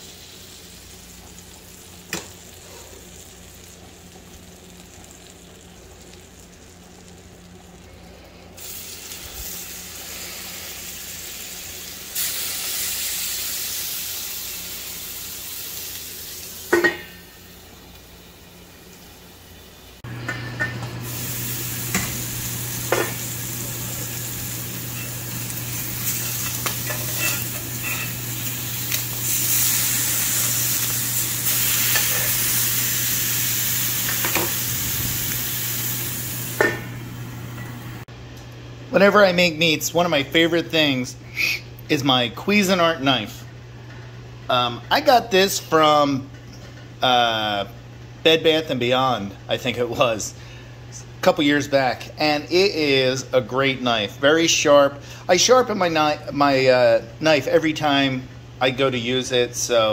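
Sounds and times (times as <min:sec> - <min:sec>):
meat sizzling in a skillet: 0:00.0 - 0:07.8, 0:08.6 - 0:17.7, 0:21.0 - 0:37.1.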